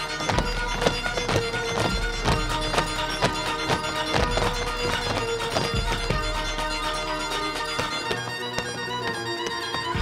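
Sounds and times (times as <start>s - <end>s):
fiddle-led string music: 0.0s - 10.0s
tap shoes clicking on stage: 0.0s - 10.0s.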